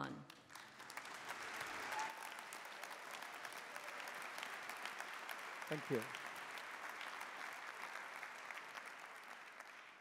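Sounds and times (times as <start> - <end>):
audience applauding: 0.3 - 10.0.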